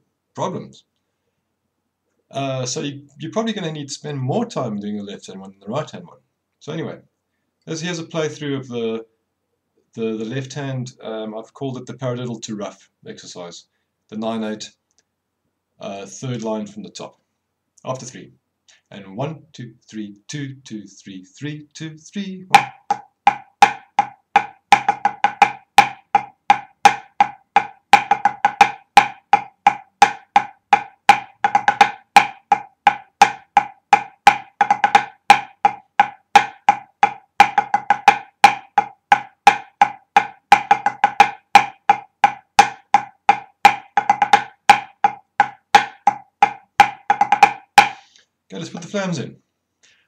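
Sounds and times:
snare drum strokes: 0:22.5 - 0:48.1.

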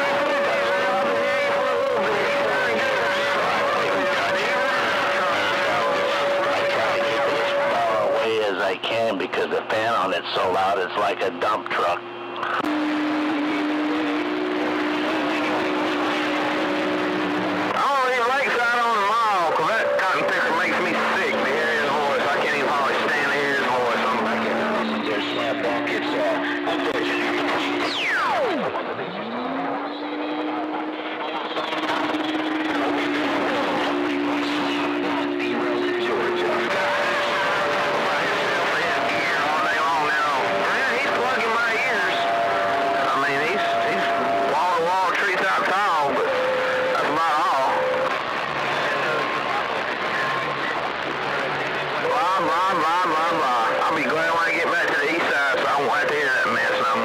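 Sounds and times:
whistling radio carrier tones: 0:00.0 - 0:50.8
garbled radio voices: 0:00.0 - 0:57.0
radio static: 0:00.0 - 0:57.0.

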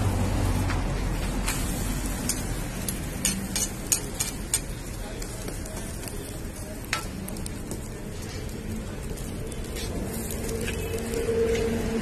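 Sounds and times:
flatbread sizzling in oil: 0:00.0 - 0:11.6
metal ladle clicking on griddle: 0:01.4 - 0:06.2, 0:06.8 - 0:07.8.

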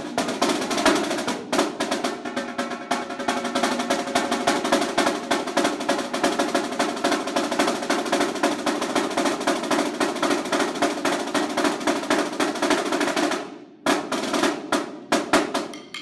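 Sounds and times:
snare drum roll: 0:00.0 - 0:16.0.

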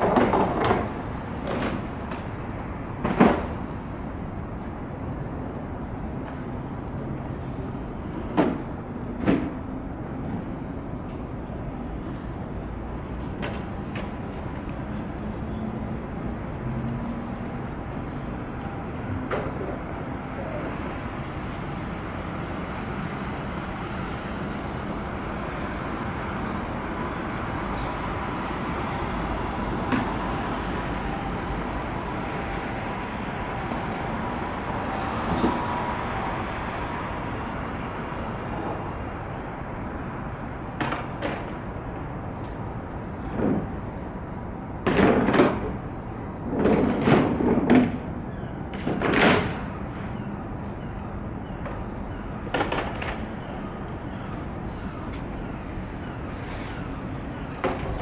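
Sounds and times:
road traffic hum: 0:00.0 - 0:58.0.

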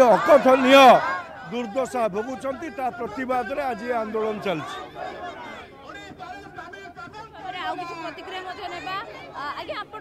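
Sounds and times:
crowd talking: 0:00.0 - 0:10.0.

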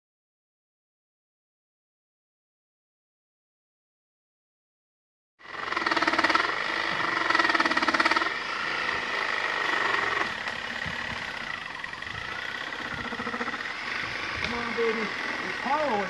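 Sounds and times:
engine running with fast pulse: 0:05.4 - 0:16.0.

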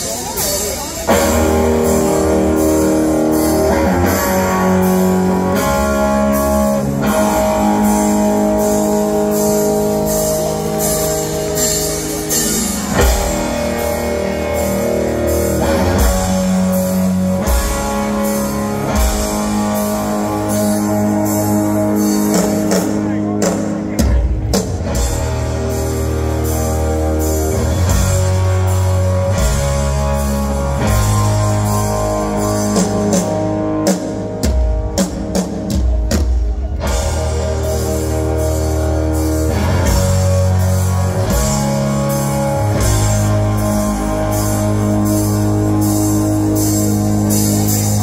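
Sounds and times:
hard rock band playing live: 0:00.0 - 0:48.0.

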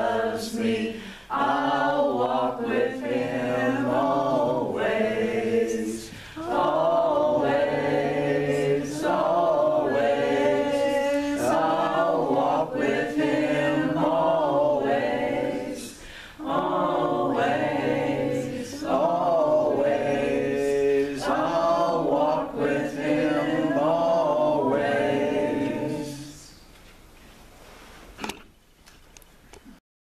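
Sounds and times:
voices singing worship song: 0:00.0 - 0:26.7.

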